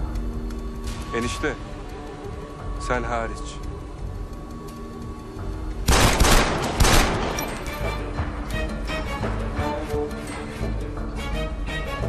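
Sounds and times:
dramatic background music: 0.0 - 12.0
gunfire: 5.9 - 7.8.

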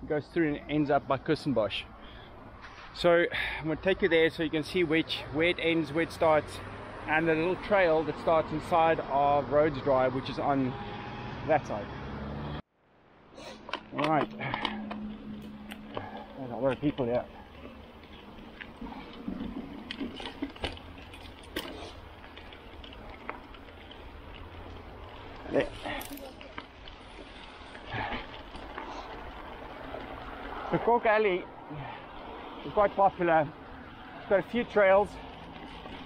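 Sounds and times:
low outdoor background hum: 12.8 - 36.0
bike tyres rolling over leaves: 14.4 - 36.0.

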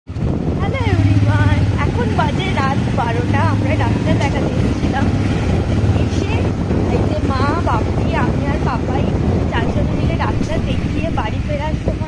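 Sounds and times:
vehicle engine running: 0.1 - 12.0.

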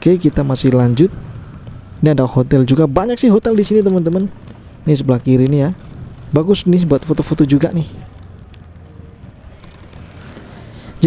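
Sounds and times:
motor scooter traffic hum: 0.0 - 11.0.

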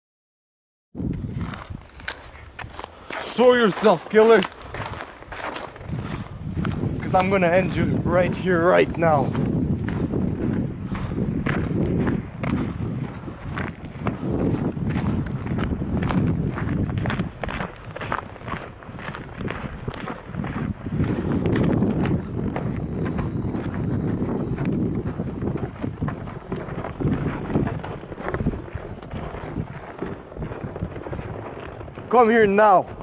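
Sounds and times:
footsteps crunching on snow: 1.0 - 33.0.

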